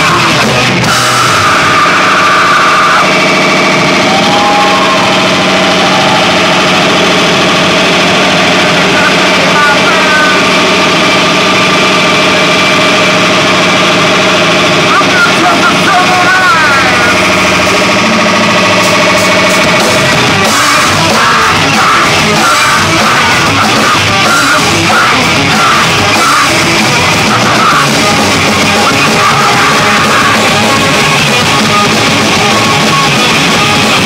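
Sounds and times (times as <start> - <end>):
voice wailing: 0.0 - 10.8
rock band amplified drone: 0.0 - 34.0.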